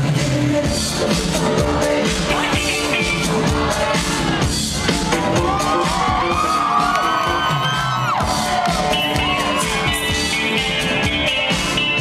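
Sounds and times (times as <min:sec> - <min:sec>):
live electro-funk band music: 0:00.0 - 0:12.0
crowd cheering and whooping: 0:02.5 - 0:11.6.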